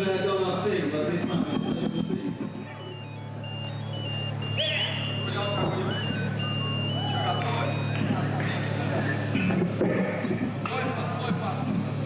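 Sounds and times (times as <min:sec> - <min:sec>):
crowd whistles: 0:00.0 - 0:09.2
amplifier hum: 0:00.0 - 0:10.6
crowd voices: 0:00.0 - 0:12.0.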